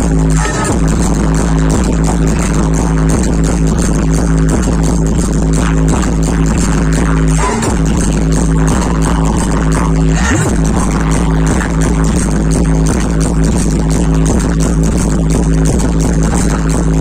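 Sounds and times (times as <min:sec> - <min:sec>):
electronic dance music: 0:00.0 - 0:17.0.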